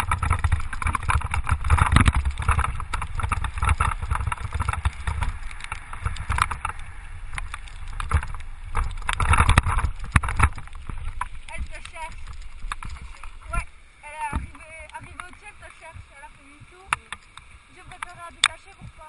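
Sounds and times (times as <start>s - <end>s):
wheels rolling on gravel: 0.0s - 19.0s
wind buffeting microphone: 0.0s - 19.0s.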